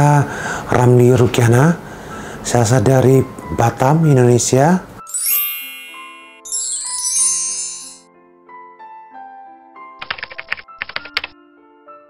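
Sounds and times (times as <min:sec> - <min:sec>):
soft background music: 0:00.0 - 0:12.0
keyboard typing clicks: 0:10.0 - 0:11.4.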